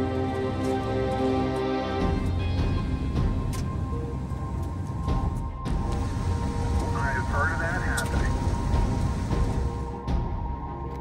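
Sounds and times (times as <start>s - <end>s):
person speaking: 6.9s - 8.3s.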